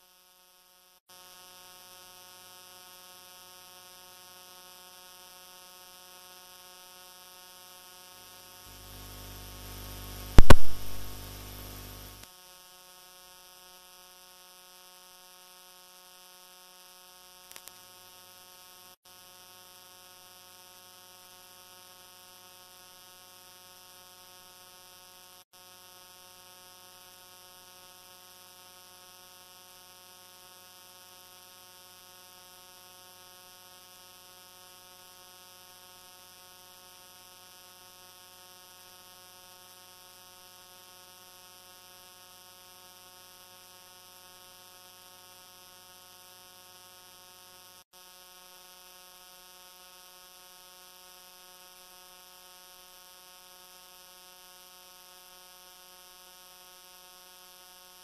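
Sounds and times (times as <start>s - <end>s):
faint electrical mains hum: 4.8s - 12.2s.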